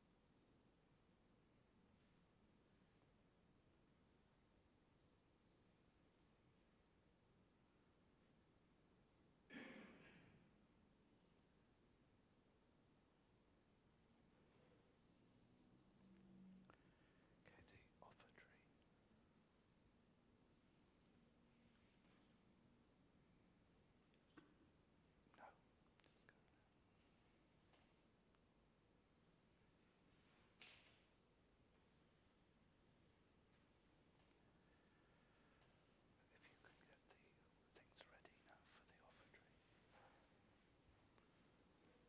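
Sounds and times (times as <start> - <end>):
faint whispered voice: 17.4 - 19.0, 24.1 - 27.2, 34.2 - 42.0.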